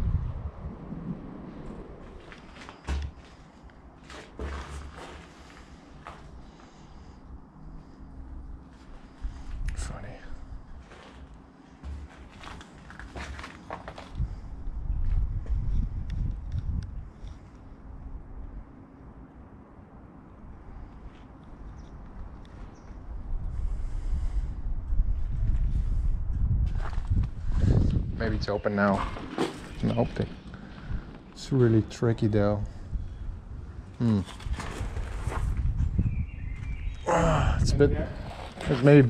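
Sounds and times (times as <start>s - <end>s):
wind rumbling on microphone: 0.0s - 39.0s
footsteps: 2.0s - 6.8s, 10.8s - 14.2s.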